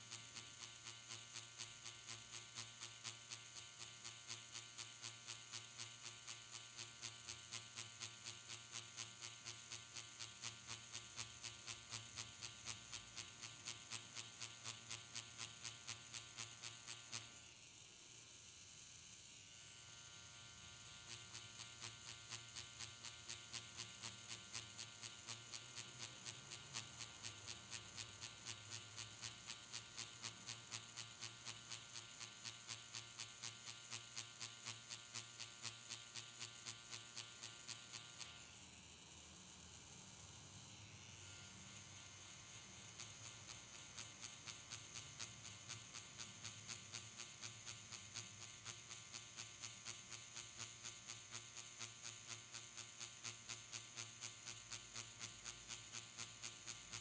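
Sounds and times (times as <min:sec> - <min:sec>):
pen machine buzzing faintly: 0:00.0 - 0:57.0.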